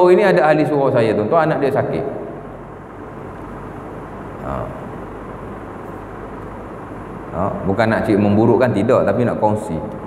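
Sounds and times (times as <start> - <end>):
room noise hiss and hum: 0.0 - 10.0.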